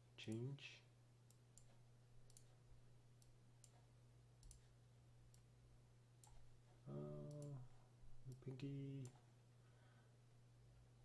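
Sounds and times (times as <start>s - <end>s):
faint computer mouse clicks: 1.3s - 2.6s, 3.2s - 5.5s, 6.2s - 6.5s, 7.2s - 7.6s
man humming: 6.9s - 7.7s.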